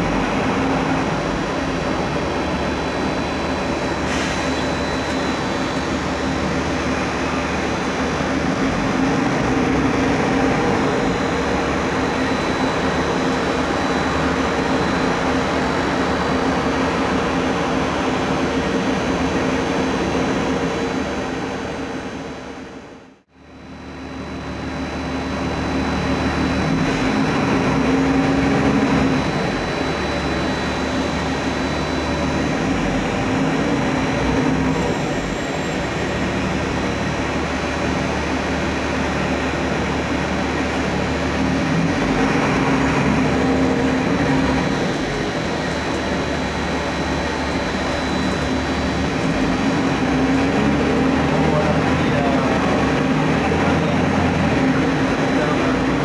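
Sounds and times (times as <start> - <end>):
bus diesel engine running: 0.0 - 56.0.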